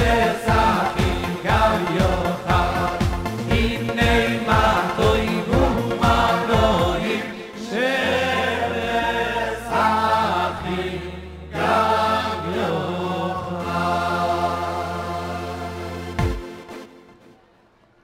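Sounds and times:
men singing into microphones: 0.0 - 15.8
electronic keyboard accompaniment: 0.0 - 17.4.

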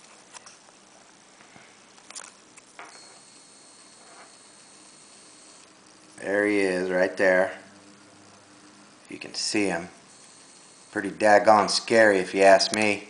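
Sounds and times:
thin high whine: 0.0 - 13.0.

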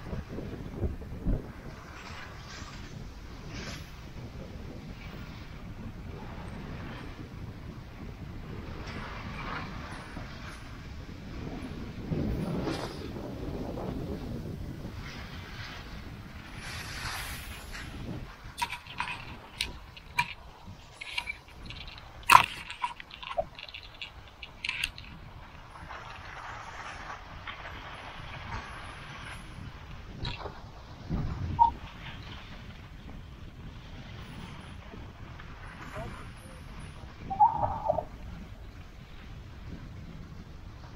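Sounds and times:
wind rushing over microphone: 0.0 - 40.9
skis sliding on snow: 15.0 - 29.1.

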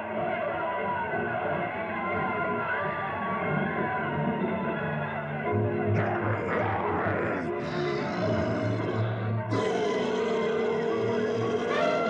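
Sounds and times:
orchestral cartoon music: 0.0 - 12.0
animal roar: 6.0 - 12.0.

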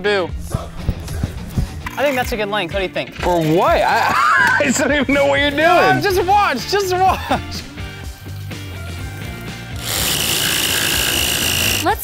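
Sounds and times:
background music: 0.0 - 12.0
circular saw cutting plywood: 9.5 - 12.0.

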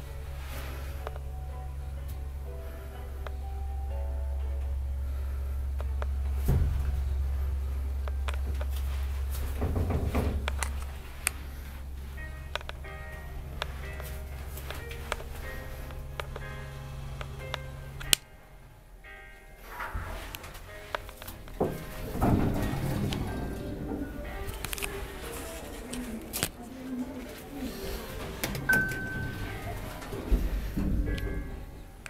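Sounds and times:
elevator doors opening: 0.0 - 32.0
elevator hum: 0.0 - 32.0
elevator thump: 5.9 - 18.2, 19.6 - 25.8, 27.7 - 32.0.

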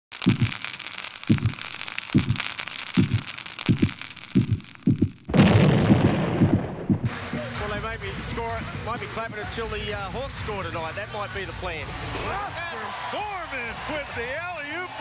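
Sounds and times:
crackling fizzing hiss: 0.0 - 6.5
loud boom: 5.3 - 7.2
low drum hits: 5.3 - 7.5
arena crowd noise with voices: 7.1 - 15.0.

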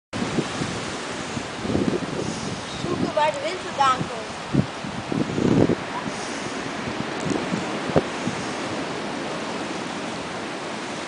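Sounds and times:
strong wind blowing over microphone: 0.2 - 11.0.

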